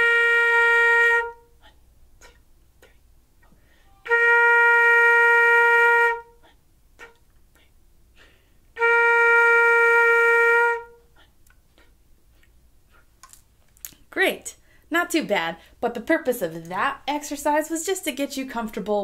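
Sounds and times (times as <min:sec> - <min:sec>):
flute holding notes: 0:00.0 - 0:01.5, 0:03.8 - 0:06.4, 0:08.8 - 0:11.1.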